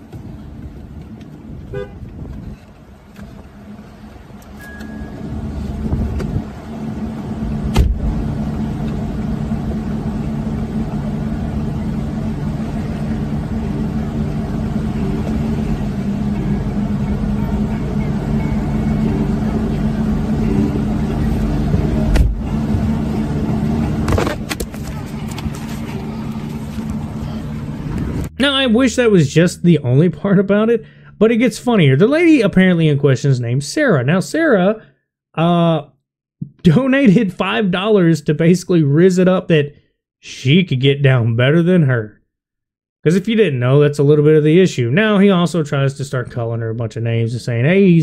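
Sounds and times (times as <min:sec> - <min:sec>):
car engine running: 0:00.0 - 0:30.7.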